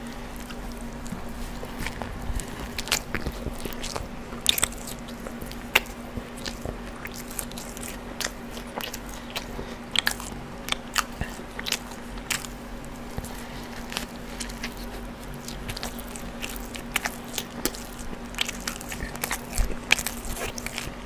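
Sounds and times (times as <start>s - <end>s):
faint steady hum: 0.0s - 21.0s
person chewing food: 0.0s - 21.0s.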